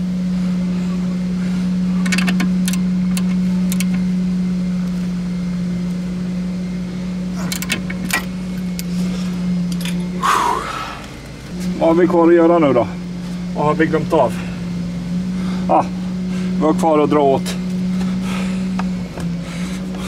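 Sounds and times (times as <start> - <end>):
steady low hum: 0.0 - 20.0
ratchet wrench clicking: 2.0 - 4.0.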